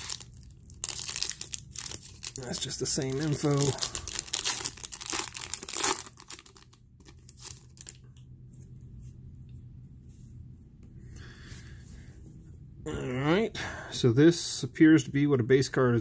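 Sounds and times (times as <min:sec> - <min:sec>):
foil wrapper crinkling and tearing: 0:00.0 - 0:08.1.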